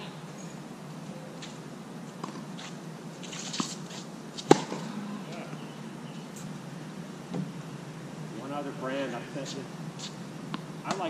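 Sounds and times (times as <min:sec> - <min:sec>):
steady low hum: 0:00.0 - 0:11.0
racket striking tennis ball: 0:04.4 - 0:04.9, 0:10.0 - 0:11.0
tennis ball bounces: 0:04.4 - 0:04.9, 0:10.5 - 0:11.0.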